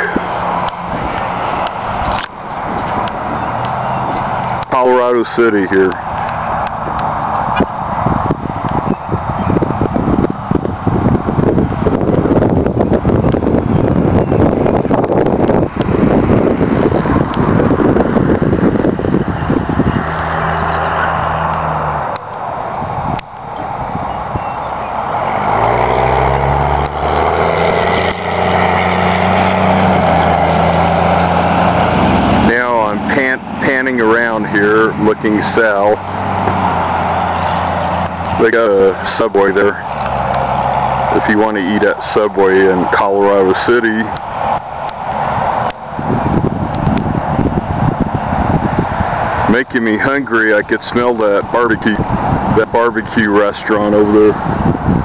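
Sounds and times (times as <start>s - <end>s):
vehicle engine hum: 0.0s - 55.0s.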